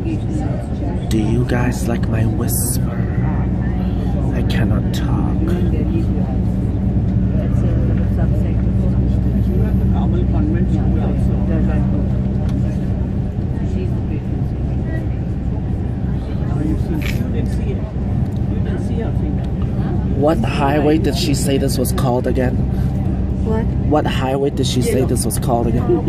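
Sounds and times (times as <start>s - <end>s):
indistinct passenger voices: 0.0s - 26.0s.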